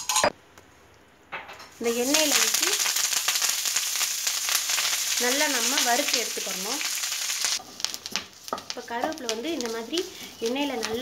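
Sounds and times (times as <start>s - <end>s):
woman speaking: 8.8s - 11.0s.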